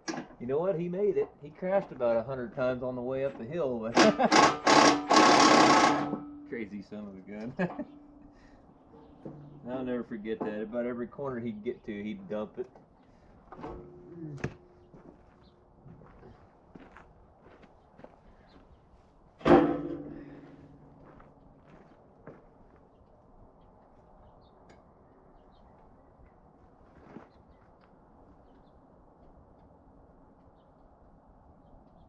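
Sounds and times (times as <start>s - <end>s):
hand tools tapping metal: 0.0s - 0.4s, 3.3s - 6.7s, 7.3s - 10.8s, 13.5s - 15.1s
metal part clanging on ground: 3.9s - 6.6s, 8.9s - 9.7s, 19.4s - 20.8s.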